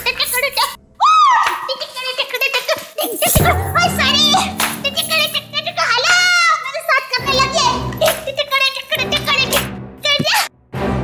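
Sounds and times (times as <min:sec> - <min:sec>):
background music with low beat: 0:03.4 - 0:08.4.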